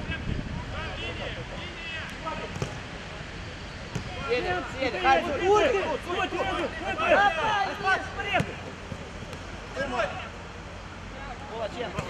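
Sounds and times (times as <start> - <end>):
players calling and shouting: 0.1 - 12.0
ball being kicked: 2.5 - 2.8, 3.9 - 4.2.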